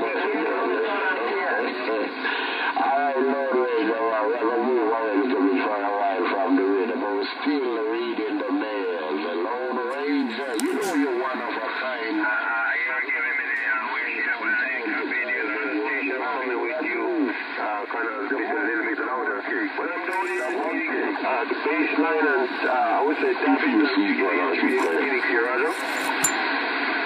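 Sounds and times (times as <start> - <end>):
voice over radio speaker: 0.0 - 26.2
radio background hiss: 0.0 - 27.0.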